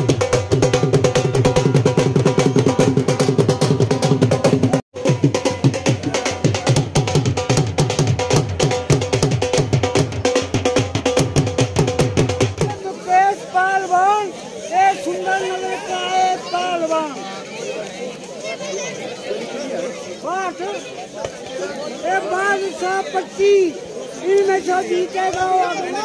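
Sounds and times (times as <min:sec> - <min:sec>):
dhol beaten with stick: 0:00.0 - 0:12.9.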